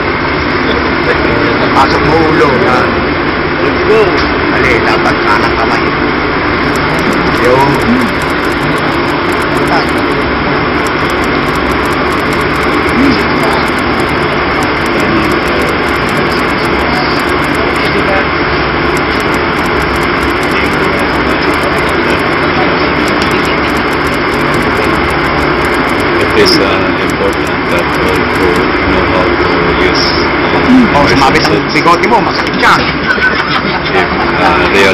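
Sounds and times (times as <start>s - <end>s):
ship machinery drone: 0.0s - 34.9s.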